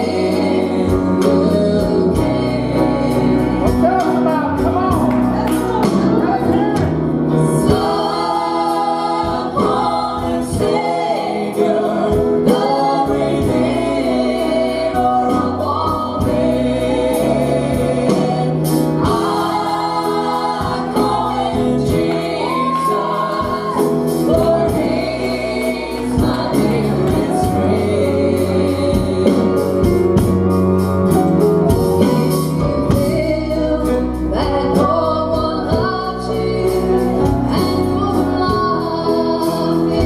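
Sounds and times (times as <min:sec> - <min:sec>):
women singing gospel song: 0:00.0 - 0:30.3, 0:31.7 - 0:40.0
guitars: 0:00.0 - 0:40.0
piano: 0:00.0 - 0:40.0.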